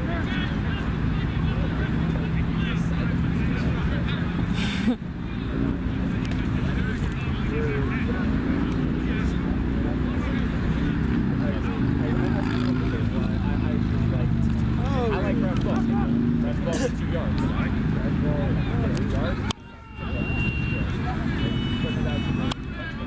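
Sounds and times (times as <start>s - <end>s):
road traffic rumble: 0.0s - 23.0s
distant players shouting: 18.7s - 23.0s.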